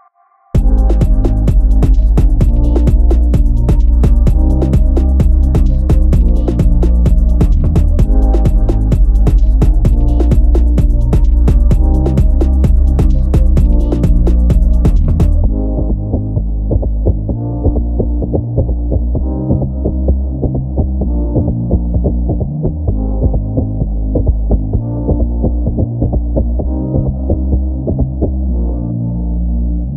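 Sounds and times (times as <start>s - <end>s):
muffled club beat: 0.6s - 28.5s.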